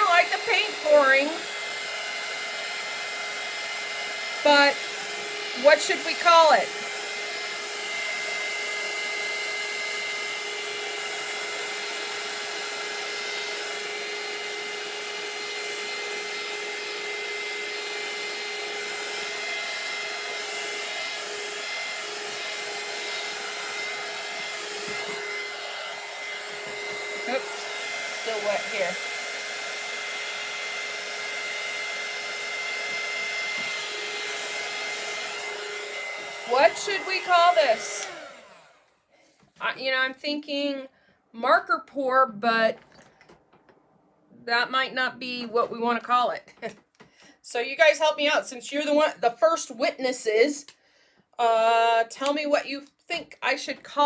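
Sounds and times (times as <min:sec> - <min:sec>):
heat tool blowing: 0:00.0 - 0:40.8.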